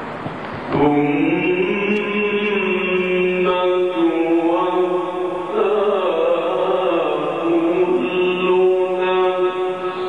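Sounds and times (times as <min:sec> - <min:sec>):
man reciting melodically into microphone: 0:00.7 - 0:10.0.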